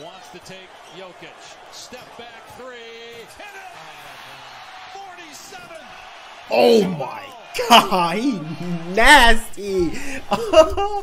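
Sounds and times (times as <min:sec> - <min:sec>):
tv commentator talking: 0:00.0 - 0:05.9, 0:06.5 - 0:10.9
arena crowd noise: 0:00.0 - 0:11.0.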